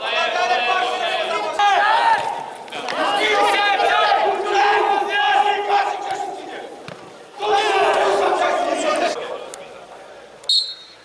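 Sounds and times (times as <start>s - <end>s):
men shouting: 0.0s - 6.8s, 7.4s - 9.2s.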